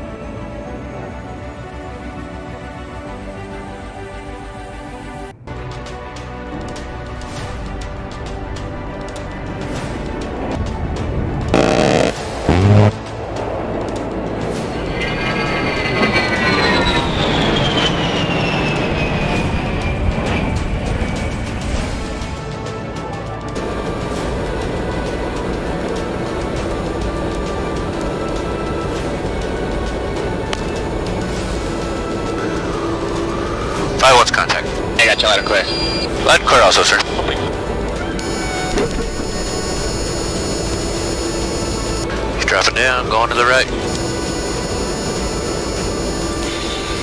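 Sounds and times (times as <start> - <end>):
loud short bursts: 11.6 - 13.0
jet engines whining in flyby: 11.6 - 22.3, 23.1 - 47.0.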